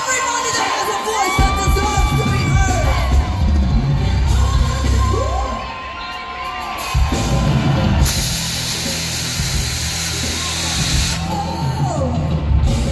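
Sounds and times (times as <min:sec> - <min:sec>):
audience whooping and cheering: 0:00.0 - 0:12.9
live pop band music: 0:00.0 - 0:12.9.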